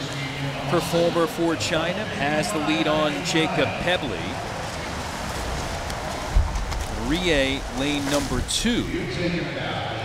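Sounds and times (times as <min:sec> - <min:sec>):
crowd noise: 0:00.0 - 0:10.0
swimmers splashing: 0:00.0 - 0:10.0.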